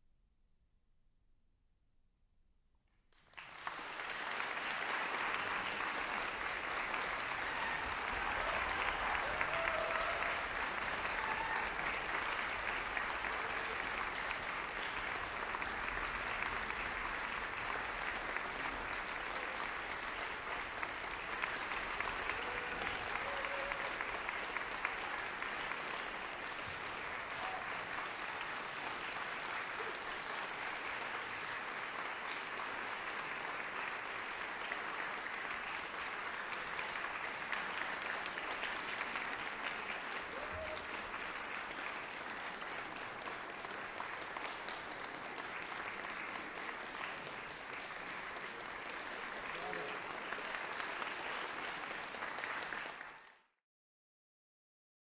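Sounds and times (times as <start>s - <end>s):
audience applauding: 3.2s - 53.5s.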